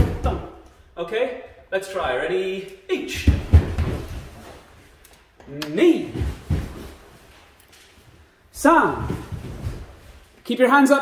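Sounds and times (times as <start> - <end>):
bare feet thumping on wooden floor: 3.2 - 4.5, 6.1 - 7.1, 8.9 - 10.2.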